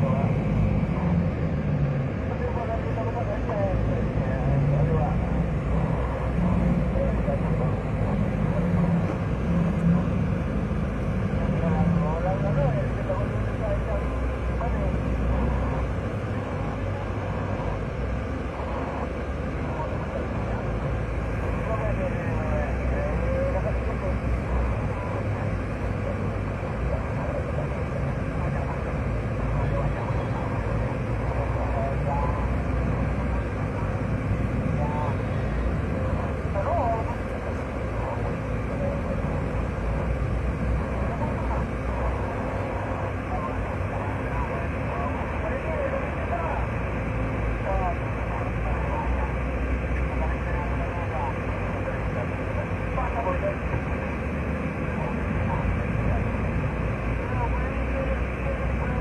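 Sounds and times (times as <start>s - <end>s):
van engine and road drone: 0.0s - 59.0s.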